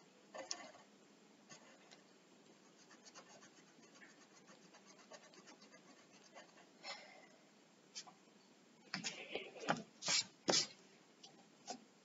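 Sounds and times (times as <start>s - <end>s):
pencil scratching on paper: 1.5s - 2.0s, 2.6s - 6.7s.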